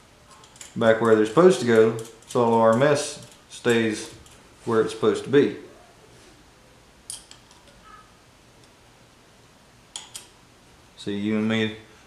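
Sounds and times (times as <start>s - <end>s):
small metallic clicks of nuts: 10.0s - 10.4s.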